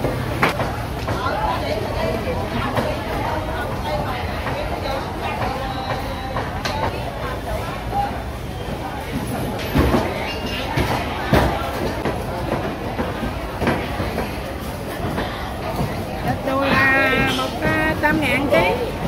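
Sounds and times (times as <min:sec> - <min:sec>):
market voices: 0:00.0 - 0:19.0.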